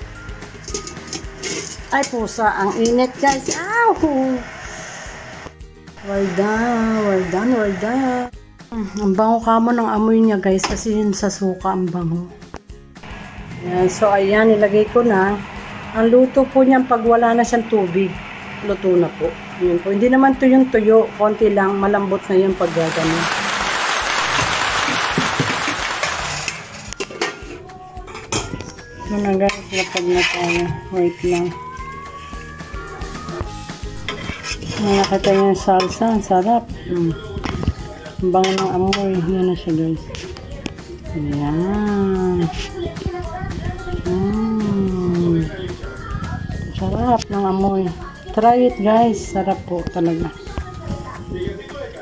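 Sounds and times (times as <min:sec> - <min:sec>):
quiet background music: 0:00.0 - 0:23.6, 0:26.0 - 0:52.0
metal lid clicks: 0:00.6 - 0:01.8
stew sizzling in a pan: 0:03.9 - 0:08.3, 0:22.7 - 0:26.9.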